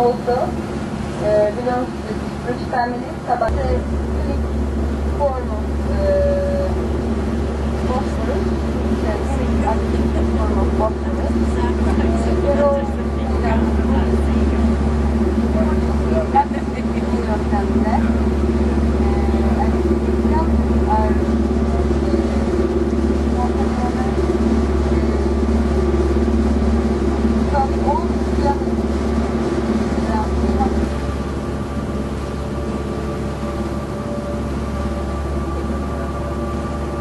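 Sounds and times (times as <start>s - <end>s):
boat engine humming: 0.0s - 37.0s.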